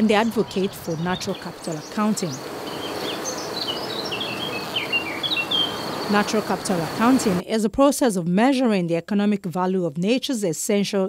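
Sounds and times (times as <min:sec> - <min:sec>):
background hiss: 0:00.0 - 0:07.4
small birds chirping: 0:00.0 - 0:07.4.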